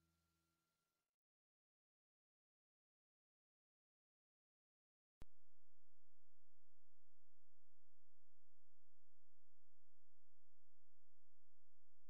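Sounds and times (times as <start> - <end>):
low electronic hum: 5.2 - 12.0.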